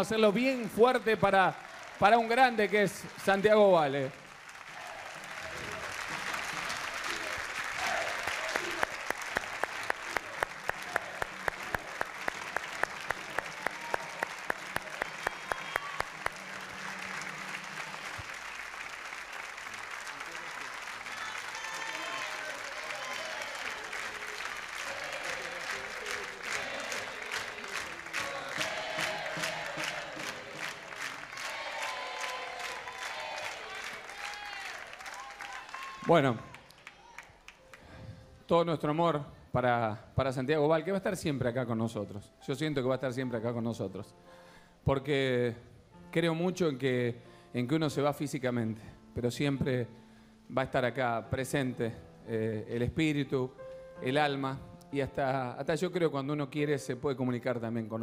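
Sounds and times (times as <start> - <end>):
rhythmic unison clapping: 0.0 - 35.5
audience applauding: 0.0 - 37.8.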